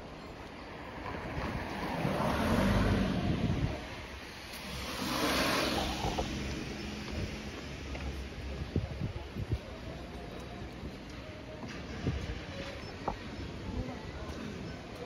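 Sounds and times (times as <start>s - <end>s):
cars passing: 0.0s - 8.7s.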